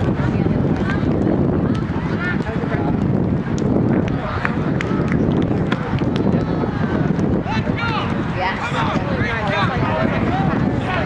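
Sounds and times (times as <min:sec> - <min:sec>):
people talking: 0:00.0 - 0:11.0
wind buffeting microphone: 0:00.0 - 0:11.0.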